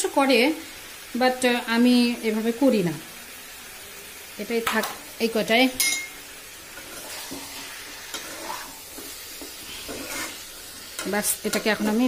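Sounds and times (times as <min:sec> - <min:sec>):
curry sizzling in a pan: 0:00.0 - 0:12.0
stirring: 0:06.7 - 0:12.0.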